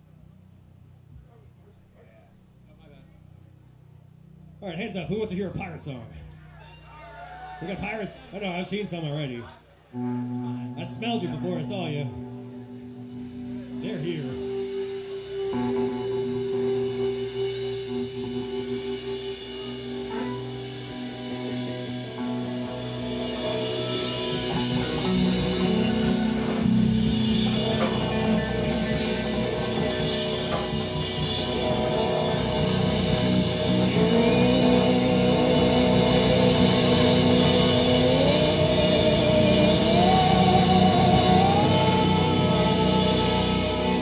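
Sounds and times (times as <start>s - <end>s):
electric guitars: 4.9s - 44.0s
drum kit: 10.0s - 44.0s.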